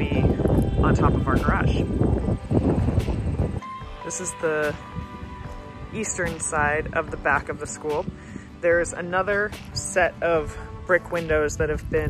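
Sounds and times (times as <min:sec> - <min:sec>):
wind buffeting a microphone: 0:00.0 - 0:12.0.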